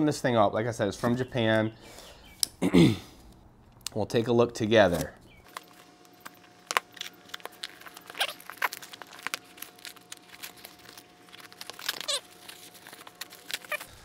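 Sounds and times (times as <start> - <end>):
plastic packing crinkling: 4.8 - 14.0.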